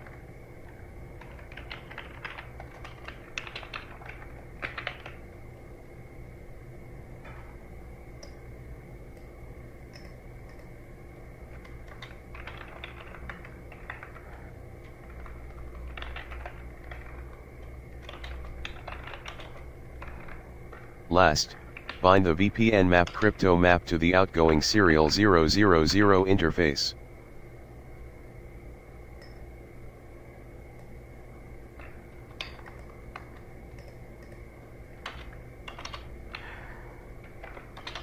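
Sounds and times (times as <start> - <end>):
computer keyboard typing: 1.2 - 5.1, 15.9 - 17.2, 18.0 - 19.6
low steady hum: 21.1 - 27.0.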